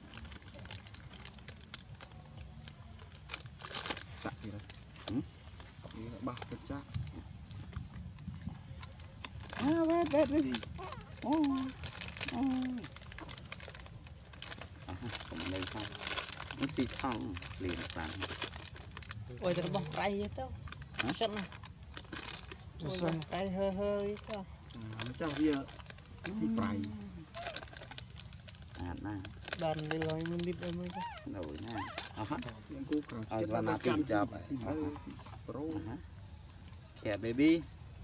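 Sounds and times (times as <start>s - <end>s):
plastic bag crinkling: 3.1s - 4.8s, 9.4s - 24.3s, 25.0s - 33.1s
baby monkey squeaky calls: 10.8s - 11.2s, 31.0s - 32.1s
person speaking: 19.3s - 20.4s, 22.8s - 23.6s, 24.8s - 27.2s, 29.7s - 35.2s.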